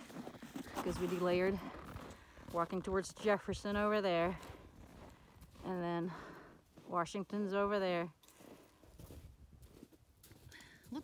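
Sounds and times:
footsteps crunching in snow: 0.0 - 11.0.

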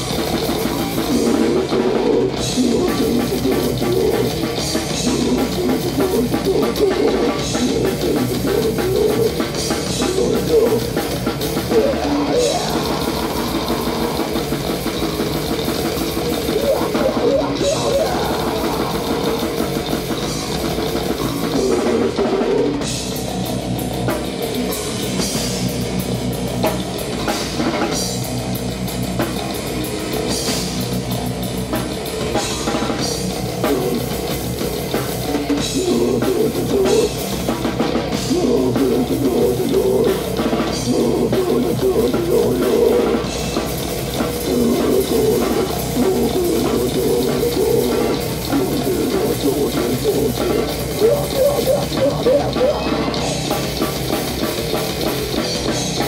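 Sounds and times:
metal band playing live: 0.0 - 56.0.

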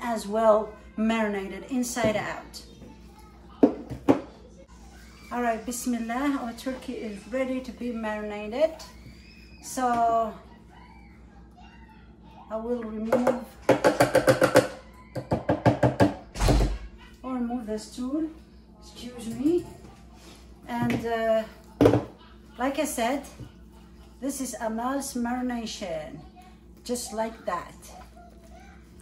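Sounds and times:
sharp knocks on kitchen counter: 3.6 - 4.3, 13.1 - 16.8, 21.8 - 22.1.

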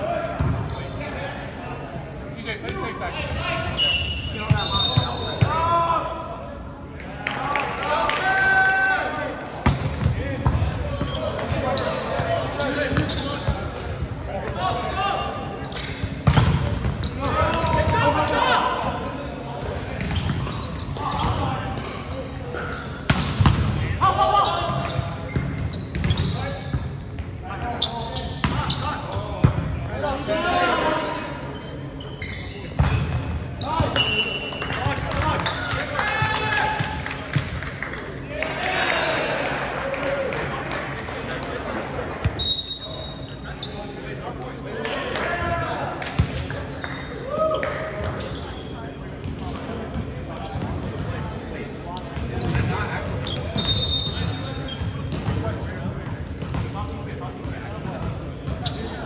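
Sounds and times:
players shouting in echoing hall: 0.0 - 25.4, 27.5 - 31.6, 32.6 - 37.4, 38.1 - 43.4, 44.4 - 48.8.

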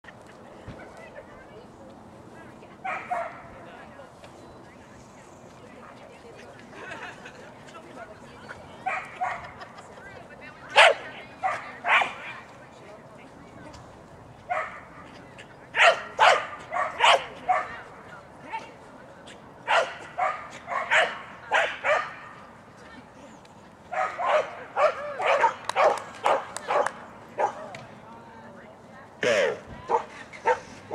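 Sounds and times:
dog barking: 2.8 - 3.4, 10.8 - 12.2, 14.5 - 14.8, 15.8 - 17.7, 19.7 - 22.2, 23.9 - 27.6.

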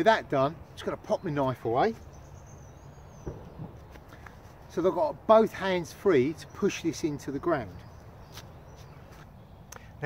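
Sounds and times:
quiet woodland background: 0.0 - 10.0.

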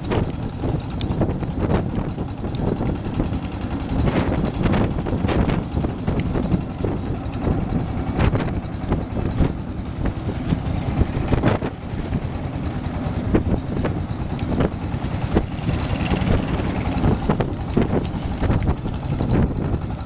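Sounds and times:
boat engine running: 0.0 - 20.0
water rushing along hull: 0.0 - 20.0
wind on microphone: 0.0 - 20.0.

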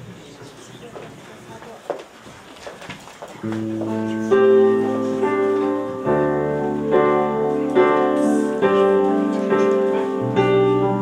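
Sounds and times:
sustained keyboard chord: 3.5 - 11.0.

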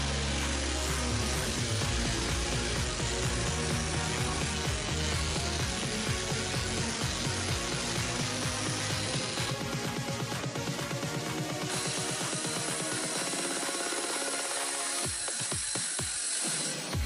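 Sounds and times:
background music: 0.0 - 17.0
orbital sander sanding wood: 0.0 - 17.0.

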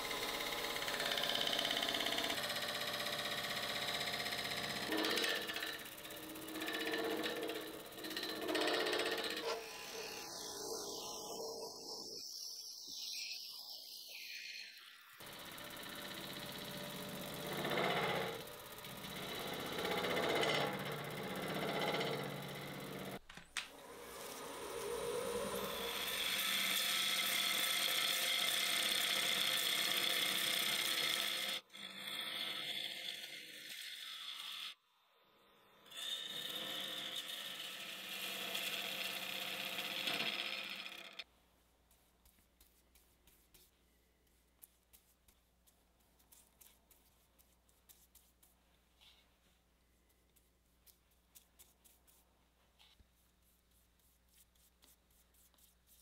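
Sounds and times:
gouge cutting wood on lathe: 0.0 - 11.4, 15.2 - 23.2, 24.0 - 34.8, 35.8 - 41.2
lathe humming: 0.0 - 12.1, 15.2 - 23.2.

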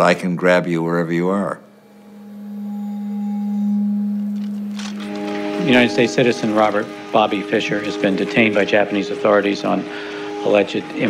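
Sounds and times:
low sustained drone: 0.0 - 11.0.

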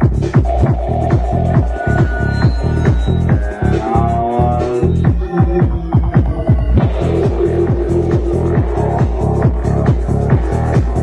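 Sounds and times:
kick and bass hits: 0.0 - 11.0
held synth tone: 0.5 - 8.1.

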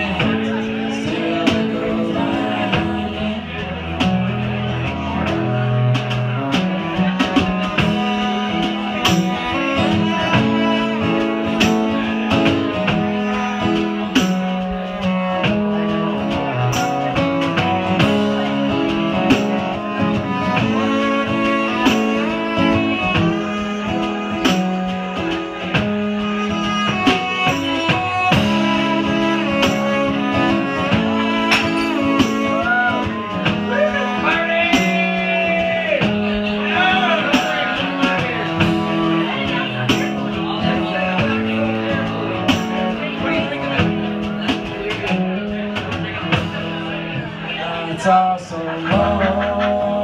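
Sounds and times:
bowed cello: 0.0 - 50.0
drum kit with cymbals: 0.0 - 50.0
strummed acoustic guitar: 0.0 - 50.0.

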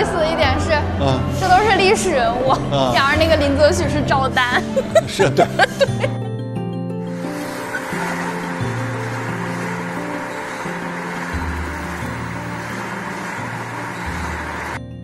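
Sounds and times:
car road and tyre noise: 7.1 - 14.8.

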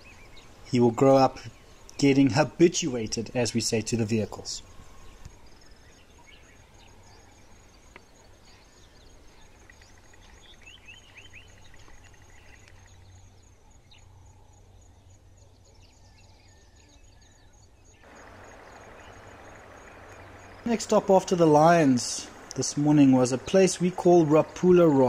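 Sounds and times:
steady outdoor hiss: 0.0 - 25.0
insect chirping: 1.3 - 25.0
birds chirping and whistling: 15.7 - 25.0.

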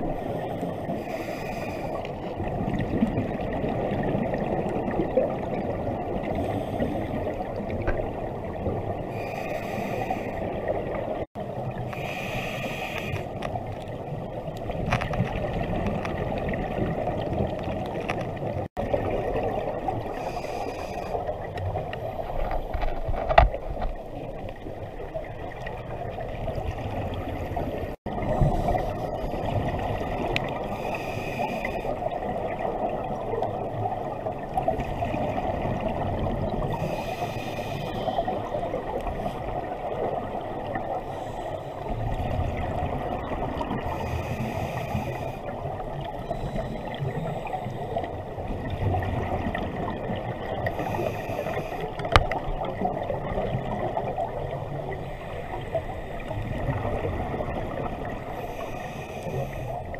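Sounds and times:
muffled underwater rush: 0.0 - 59.9
regulator inhaling hiss: 1.0 - 2.0, 9.2 - 10.4, 11.9 - 13.4, 20.2 - 21.2, 36.8 - 38.2, 50.7 - 52.0, 58.3 - 59.9
exhaled bubbles rumbling: 2.0 - 9.2, 13.4 - 20.3, 21.1 - 30.8, 31.7 - 37.1, 41.8 - 51.1, 51.9 - 58.4.

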